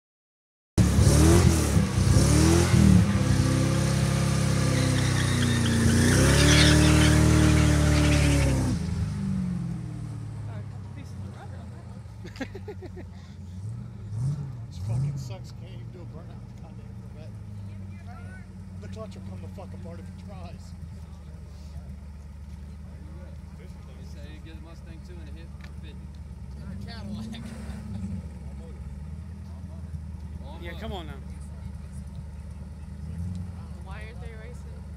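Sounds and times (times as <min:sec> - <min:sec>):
cars launching: 0:00.8 - 0:11.2, 0:12.1 - 0:20.9, 0:23.3 - 0:34.9
car engines revving: 0:00.8 - 0:34.9
crowd murmuring: 0:16.0 - 0:34.7.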